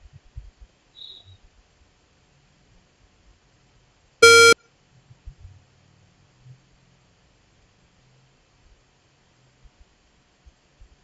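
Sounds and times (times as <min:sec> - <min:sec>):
electronic alert beep: 0:04.2 - 0:04.6.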